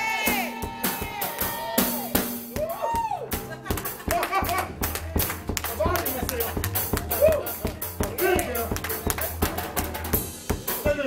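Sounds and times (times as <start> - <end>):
church music with drums: 0.0 - 11.0
hands clapping in rhythm: 1.2 - 1.7, 2.5 - 10.2.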